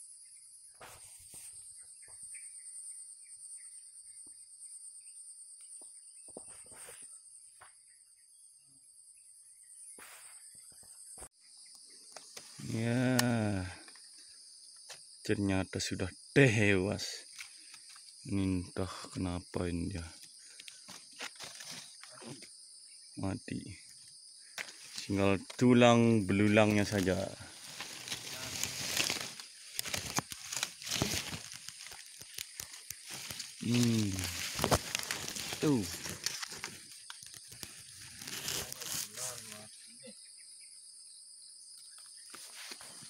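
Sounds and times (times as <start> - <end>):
high-pitched insect chorus: 0.0 - 43.0
dry grass rustling and crackling: 20.8 - 22.0, 26.3 - 39.6.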